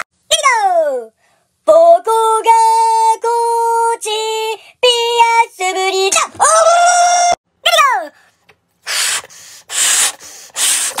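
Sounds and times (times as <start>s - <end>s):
balloon inflating hiss: 8.8s - 11.0s
breaths blown into balloon: 8.8s - 11.0s.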